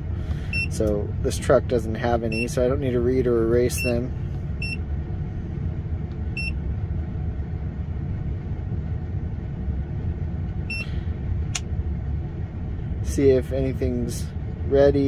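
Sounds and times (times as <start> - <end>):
low rumble: 0.0 - 15.0
scanner beeping: 0.4 - 0.8, 2.3 - 2.6, 3.7 - 4.8, 6.4 - 6.6, 10.7 - 11.0.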